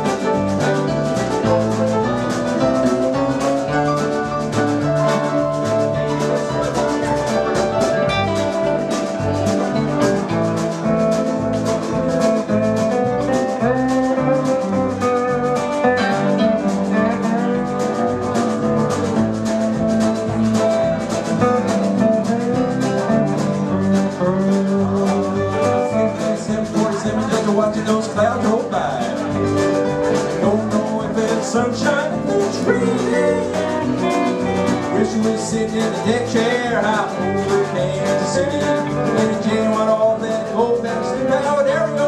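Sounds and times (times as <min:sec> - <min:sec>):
drums keeping a steady beat: 0:00.0 - 0:42.0
electric bass: 0:00.0 - 0:42.0
guitar: 0:00.0 - 0:42.0
lap steel guitar: 0:00.0 - 0:42.0
mandolin: 0:00.0 - 0:42.0.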